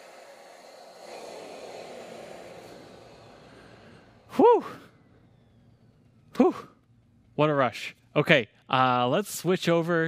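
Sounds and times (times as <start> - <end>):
man exclaiming whew: 4.3 - 4.9.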